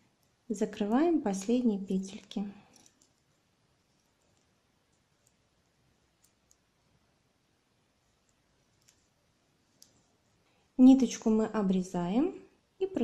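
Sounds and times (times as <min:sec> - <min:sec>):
knitting needles clicking: 0:01.4 - 0:03.3, 0:04.0 - 0:05.4, 0:06.1 - 0:06.7, 0:08.2 - 0:09.1, 0:09.7 - 0:10.1.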